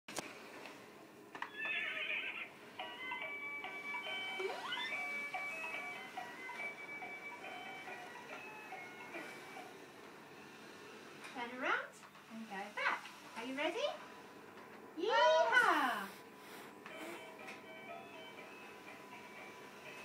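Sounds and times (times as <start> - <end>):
recorded horse whinny: 1.4 - 2.6
electronic beeping tune: 4.3 - 5.5.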